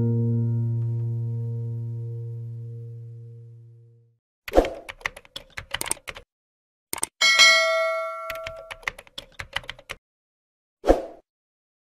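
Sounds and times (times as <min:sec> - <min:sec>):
keyboard typing clicks: 0:04.5 - 0:06.3, 0:06.9 - 0:07.2, 0:08.2 - 0:10.0
bell ding: 0:07.2 - 0:08.8.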